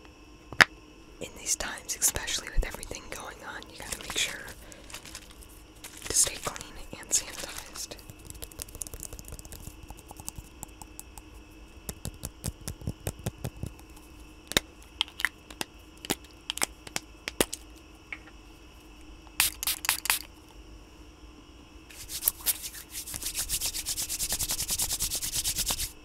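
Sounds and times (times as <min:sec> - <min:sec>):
fingers rubbing sticky sanitizer: 0:06.1 - 0:11.0, 0:11.9 - 0:13.9, 0:21.9 - 0:25.9
pump bottle spraying: 0:19.4 - 0:20.3.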